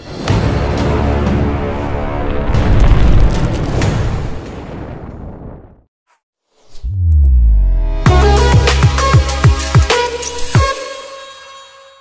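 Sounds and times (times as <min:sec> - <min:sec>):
loud dramatic music: 0:00.0 - 0:03.3, 0:07.9 - 0:11.3
deep boom: 0:02.3 - 0:05.9.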